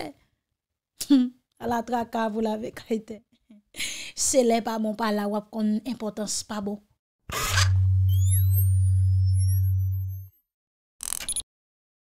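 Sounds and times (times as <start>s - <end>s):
synth hit: 7.3s - 10.2s
high rising synth sweeps: 7.5s - 10.3s
deep synth bass tone: 7.6s - 10.3s.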